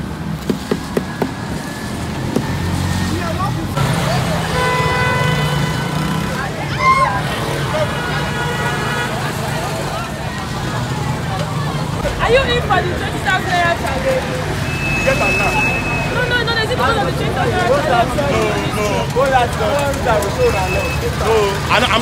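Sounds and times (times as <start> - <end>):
engine rumbling: 0.0 - 22.0
street traffic: 0.0 - 22.0
vehicle horn blasts: 4.4 - 6.3.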